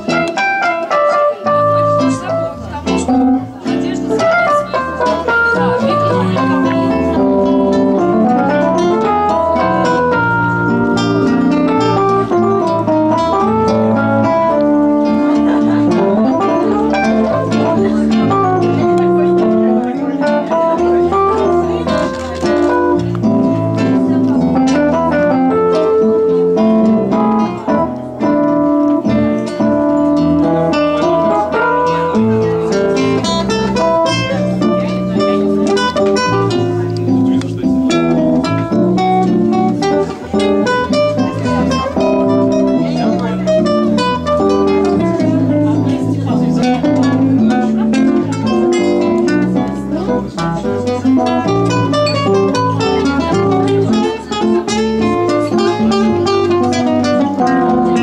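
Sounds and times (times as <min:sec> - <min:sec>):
classical guitar plucked notes: 0:00.0 - 0:58.0
sustained low keyboard notes: 0:00.0 - 0:58.0.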